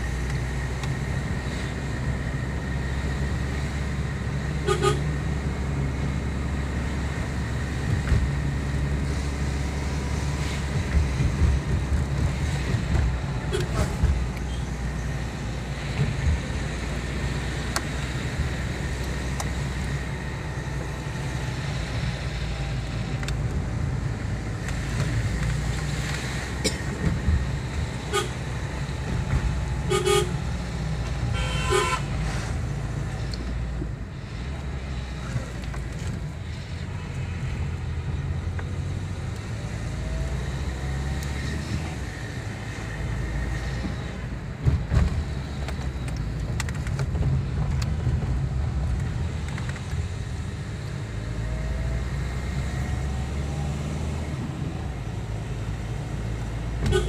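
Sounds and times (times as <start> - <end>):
vehicle driving rumble: 0.0 - 57.0
short horn toots: 31.3 - 32.1.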